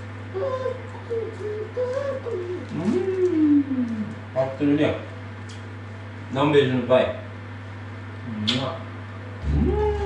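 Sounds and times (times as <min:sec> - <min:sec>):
person cooing: 0:00.3 - 0:04.1, 0:09.4 - 0:10.0.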